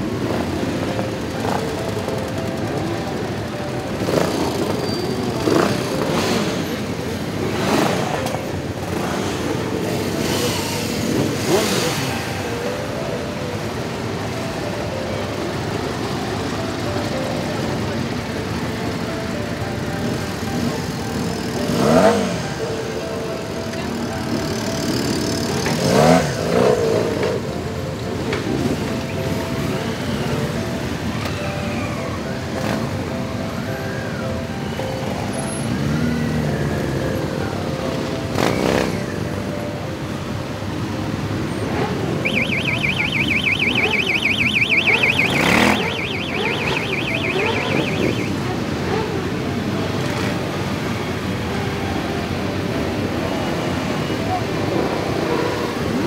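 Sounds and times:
motorcycle engines revving loudly: 0.0s - 14.6s, 15.4s - 31.2s, 32.4s - 33.8s, 34.8s - 56.0s
motorcycle engines running: 0.0s - 56.0s
voices: 41.7s - 50.4s.

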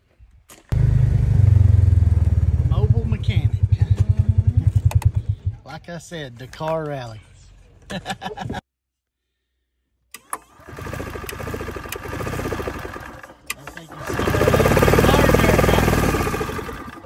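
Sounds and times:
golf cart engine cranking: 10.1s - 17.0s.

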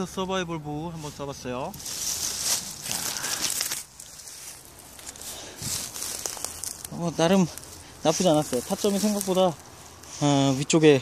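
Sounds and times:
dry brush crunching underfoot: 0.8s - 11.0s.

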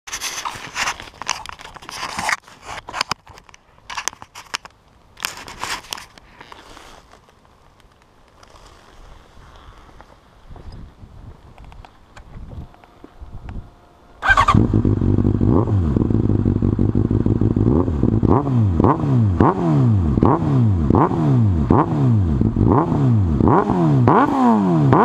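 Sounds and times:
camera handling rustling: 0.1s - 8.6s
footsteps on gritty asphalt: 5.2s - 13.2s.

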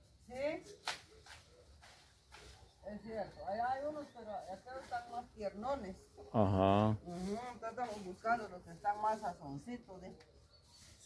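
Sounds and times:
faint voice: 6.3s - 7.0s.

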